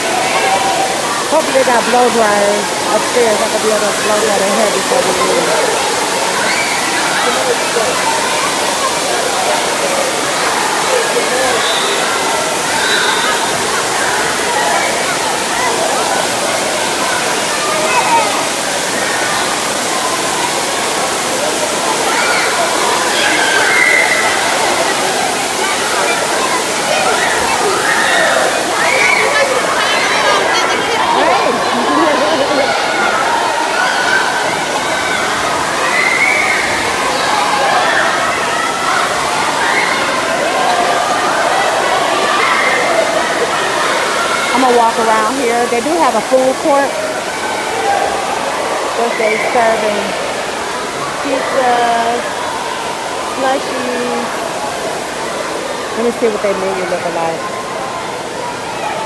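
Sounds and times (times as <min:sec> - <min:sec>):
children's voices: 0:00.0 - 0:59.0
water pouring and splashing: 0:00.0 - 0:59.0.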